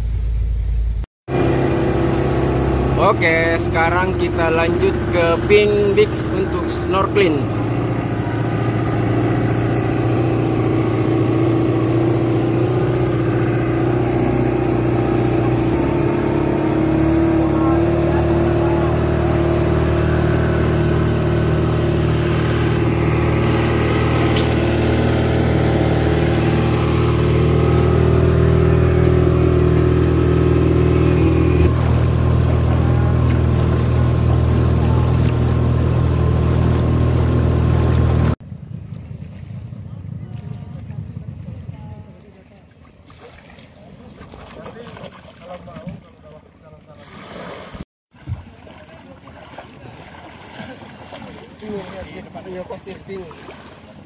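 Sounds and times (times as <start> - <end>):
boat engine running: 0.0 - 54.0
water rushing along hull: 1.3 - 54.0.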